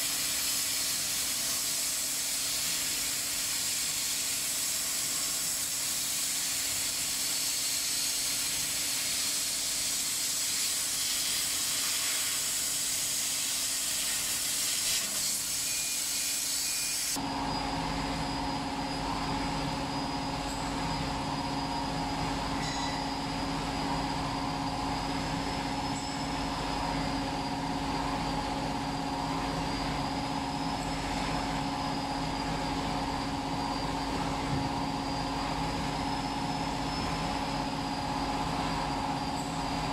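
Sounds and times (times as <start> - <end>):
laser engraver and fans humming: 0.0 - 39.9
thin high whine: 0.0 - 39.9.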